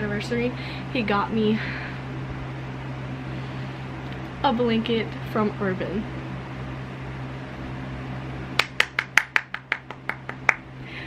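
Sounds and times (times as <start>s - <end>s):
low room hum: 0.0s - 11.0s
light hand claps: 8.6s - 10.7s.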